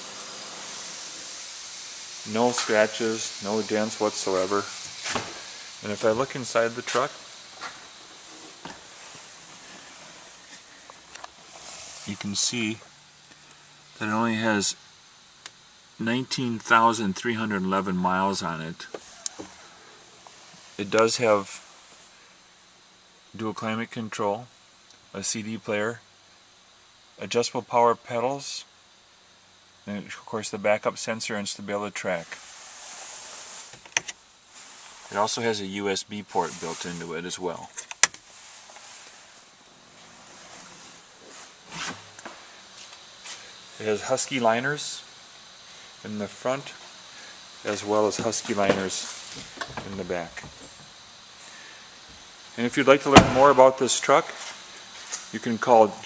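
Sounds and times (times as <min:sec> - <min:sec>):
room noise hiss: 0:00.0 - 0:56.0.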